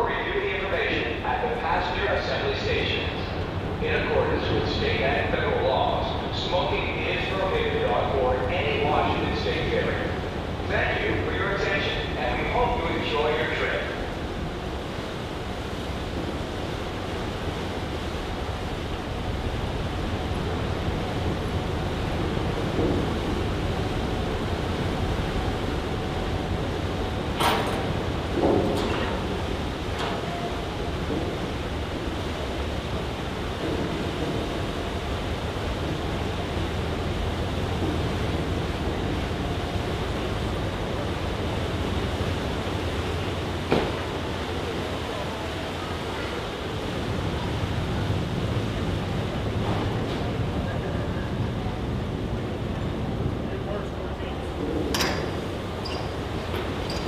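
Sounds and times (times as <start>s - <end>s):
propeller-churned water rushing: 0.0s - 57.0s
ship low rumble: 0.0s - 57.0s.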